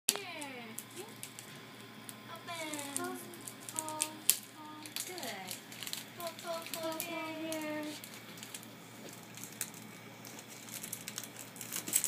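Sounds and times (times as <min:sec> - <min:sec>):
gift wrapping crackling: 0:00.4 - 0:12.0.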